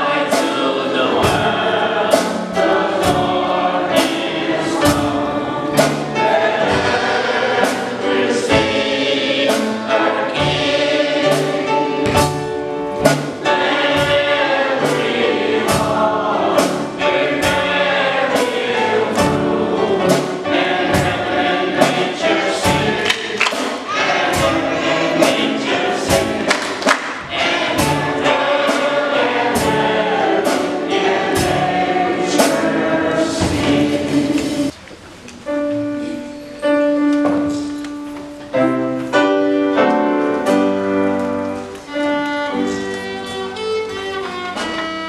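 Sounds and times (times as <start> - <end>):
gospel choir singing over a beat: 0.0 - 34.8.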